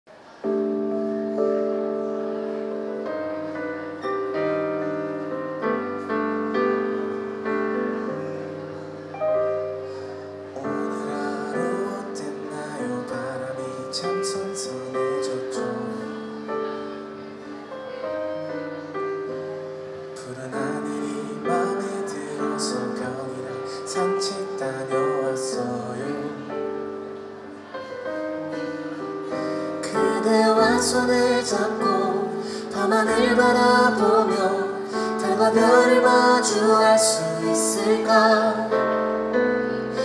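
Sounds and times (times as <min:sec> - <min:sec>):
piano chords on synthesizer: 0:00.1 - 0:40.0
man singing: 0:10.6 - 0:16.3, 0:20.2 - 0:26.6, 0:29.8 - 0:38.8.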